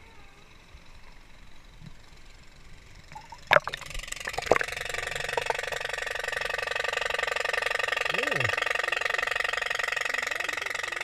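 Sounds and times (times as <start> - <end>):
faint poolside ambience: 0.0 - 5.1
muffled underwater water noise: 0.3 - 6.5.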